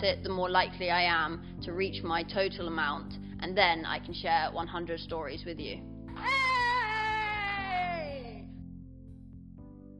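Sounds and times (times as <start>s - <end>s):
background music: 0.0s - 9.9s
woman cheering: 6.2s - 8.4s.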